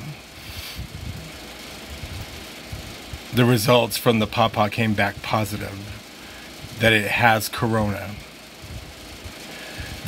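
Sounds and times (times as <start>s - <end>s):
background hiss: 0.0s - 2.2s
low uneven rumble: 0.0s - 10.0s.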